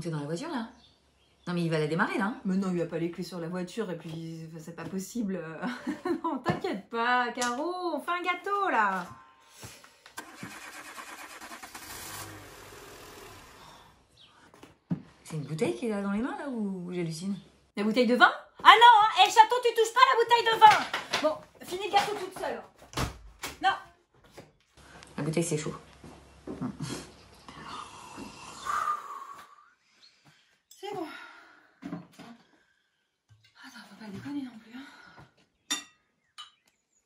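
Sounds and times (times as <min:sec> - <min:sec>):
car engine starting and running: 0:10.2 - 0:14.0
person exhaling breathily: 0:12.7 - 0:14.1.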